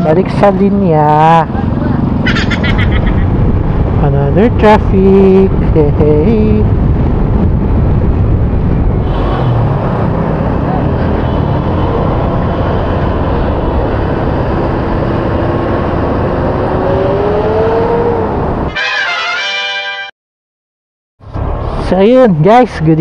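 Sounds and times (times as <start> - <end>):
wind noise: 0.0 - 18.8
surrounding traffic: 0.0 - 20.1, 21.2 - 23.0.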